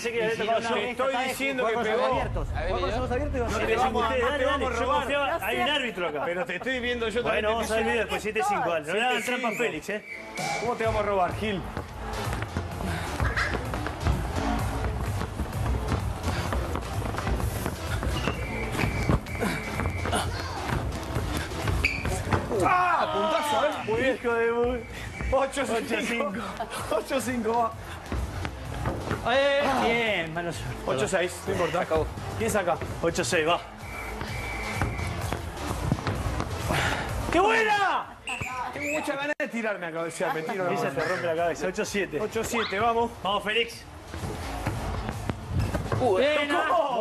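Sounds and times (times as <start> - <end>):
background music: 0.0 - 47.0
feet moving on floor: 11.7 - 22.8.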